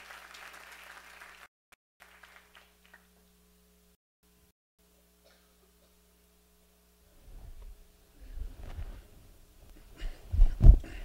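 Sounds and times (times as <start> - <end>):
low thumps with rustling: 7.2 - 9.1, 10.0 - 11.0.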